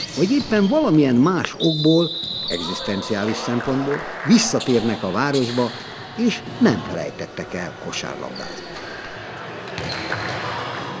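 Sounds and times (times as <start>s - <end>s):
people talking: 0.0s - 8.8s
basketball bouncing on wooden court: 9.7s - 10.4s.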